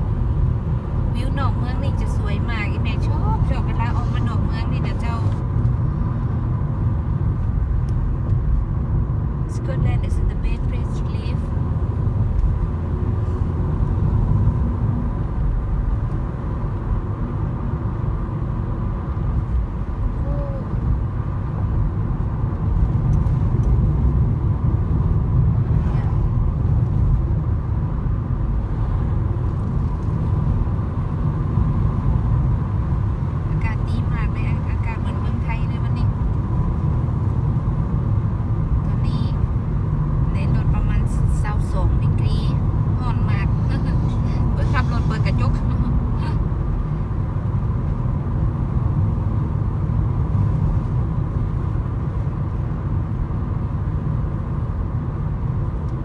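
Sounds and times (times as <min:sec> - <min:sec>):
car engine and tyre rumble: 0:00.0 - 0:56.0.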